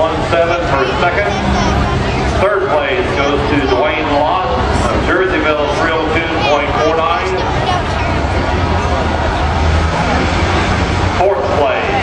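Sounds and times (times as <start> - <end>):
engine rumbling: 0.0 - 12.0
murmur of crowd chatter: 0.0 - 12.0.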